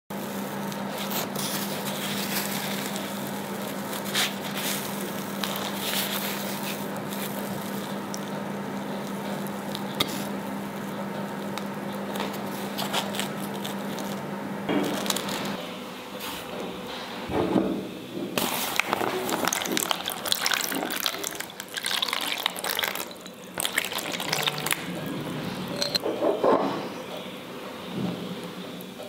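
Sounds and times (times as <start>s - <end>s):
bread crust crackling: 0.4s - 15.6s.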